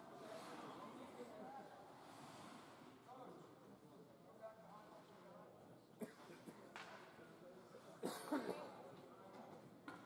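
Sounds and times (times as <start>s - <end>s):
faint indistinct voices talking: 0.0s - 10.0s.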